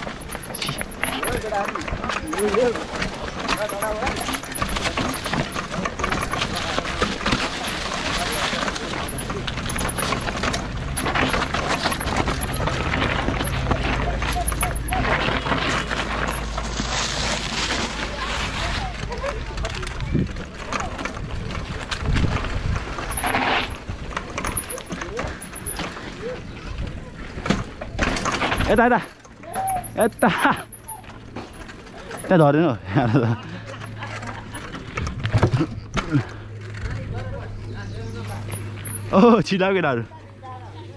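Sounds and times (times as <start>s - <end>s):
bike clattering knocks: 0.0s - 16.8s, 20.3s - 32.4s
bike tyres crunching over trail: 0.0s - 39.6s
wind rumbling on microphone: 18.7s - 24.2s.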